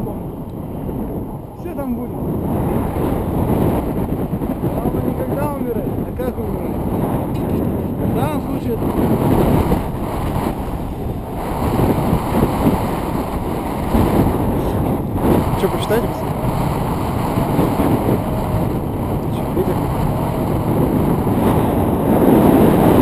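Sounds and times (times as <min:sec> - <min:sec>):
wind buffeting microphone: 0:00.0 - 0:23.0
faint voices: 0:04.6 - 0:21.9.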